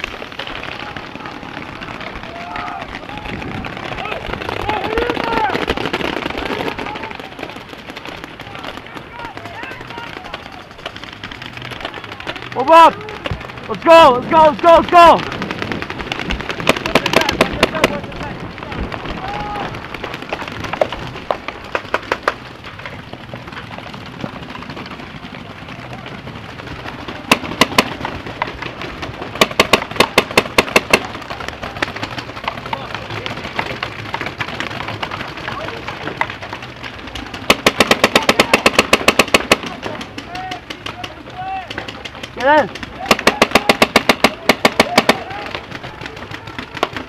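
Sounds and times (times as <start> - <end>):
paintball markers firing: 0.0 - 24.9, 26.6 - 47.0.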